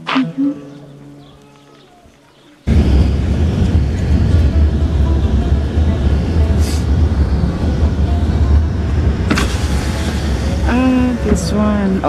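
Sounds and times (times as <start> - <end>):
car rumble inside cabin: 2.7 - 12.0
person speaking: 10.6 - 12.0.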